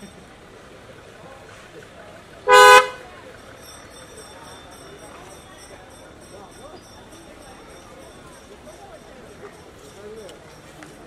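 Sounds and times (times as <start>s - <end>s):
car horn beep: 2.5s - 3.0s.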